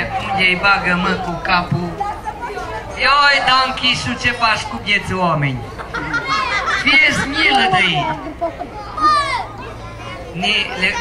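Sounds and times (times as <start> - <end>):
low crowd murmur: 0.0 - 11.0
children's voices: 5.6 - 11.0.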